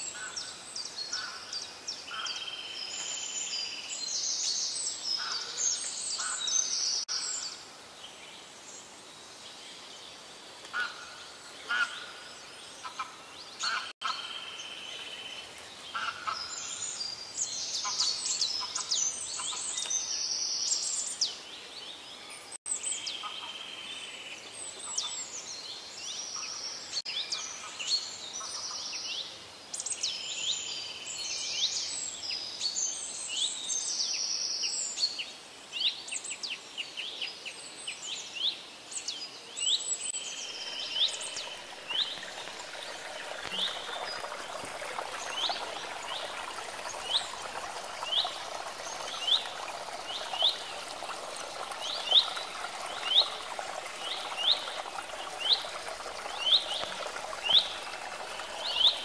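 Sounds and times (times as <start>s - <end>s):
songbirds chorus: 39.1s - 59.0s.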